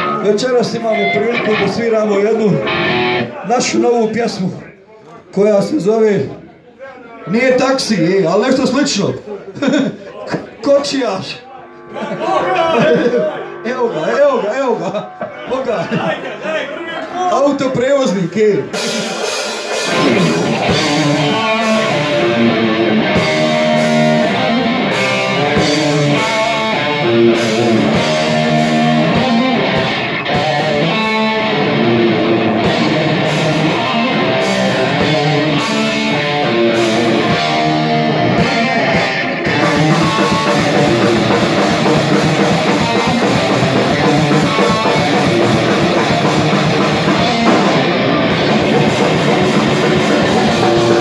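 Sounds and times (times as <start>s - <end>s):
distorted electric guitar riff: 0.0s - 3.4s, 10.8s - 16.4s, 18.7s - 51.0s
drum kit: 18.6s - 51.0s.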